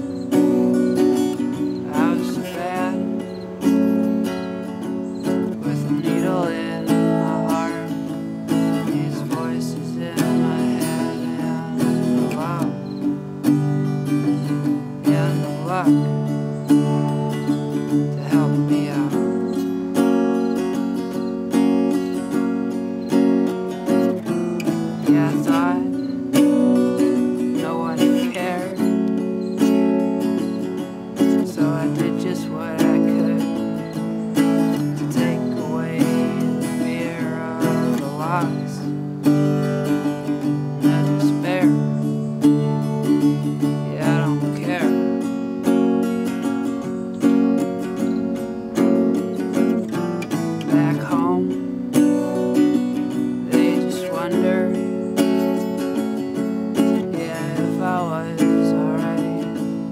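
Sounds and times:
acoustic guitar strumming chords: 0.0s - 59.9s.

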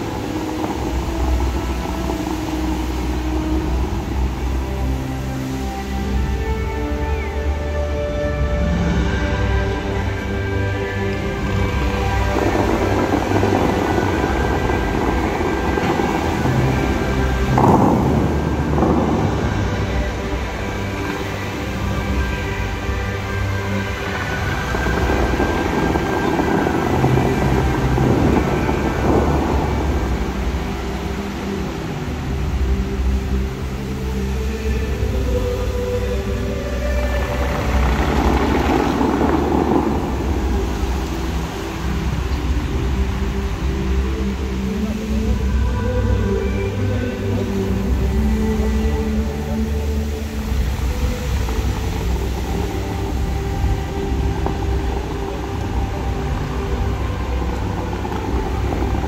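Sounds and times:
deep rumble: 0.0s - 59.0s
music over loudspeakers: 0.0s - 59.0s
water jets rushing: 0.0s - 59.0s.

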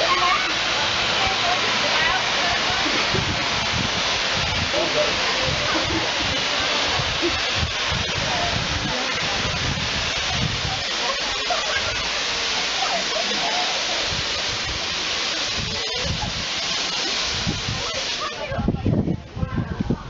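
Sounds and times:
loud rushing hiss: 0.0s - 20.0s
people talking: 0.0s - 20.0s
wind buffeting microphone: 2.5s - 11.3s, 14.0s - 20.0s.

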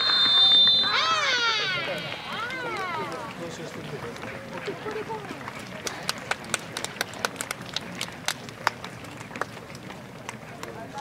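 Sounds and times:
outdoor ground noise: 0.0s - 11.0s
sharp claps: 5.4s - 10.8s.

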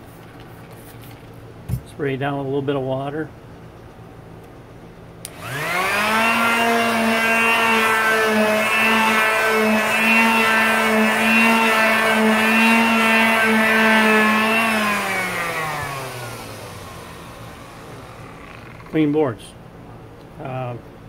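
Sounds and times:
electric palm sander running: 5.3s - 19.2s.

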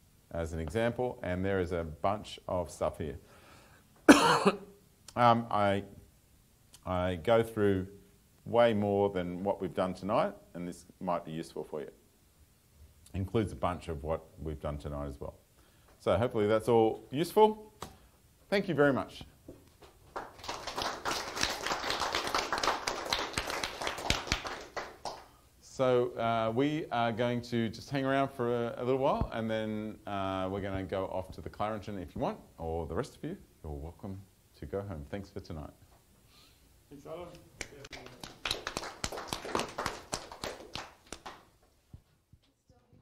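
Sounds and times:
audience applauding: 20.1s - 25.3s, 37.6s - 41.5s.

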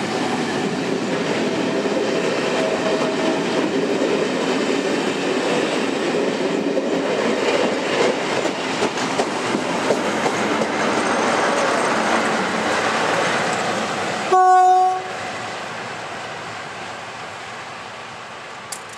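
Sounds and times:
train wheels clattering: 1.4s - 13.7s
locomotive horn blast: 14.3s - 15.2s.

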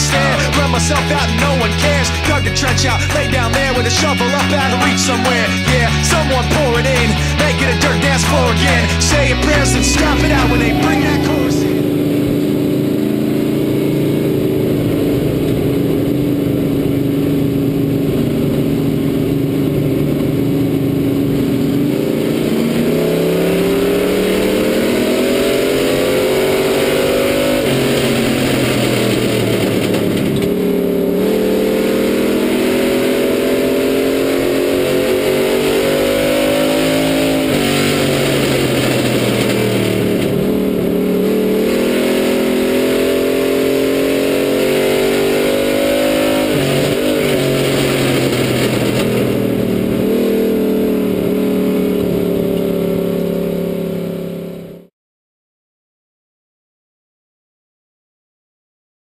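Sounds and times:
race car engine revving: 0.0s - 54.9s.

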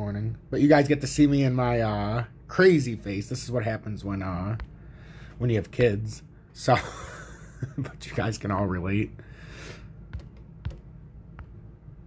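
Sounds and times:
low steady hum: 0.0s - 12.0s
light taps: 10.1s - 11.8s.

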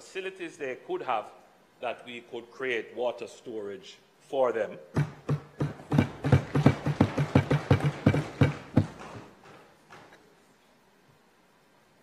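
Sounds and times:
thumping on wooden desks: 4.9s - 10.2s.

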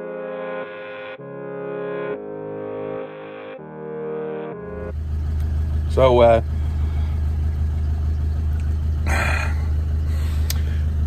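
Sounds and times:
engine idling: 4.6s - 11.0s.

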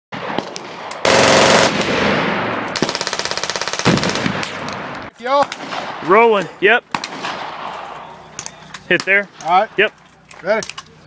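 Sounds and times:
gunshot echo: 0.2s - 3.0s, 3.8s - 8.2s
automatic gunfire: 0.2s - 6.0s, 6.9s - 7.8s.

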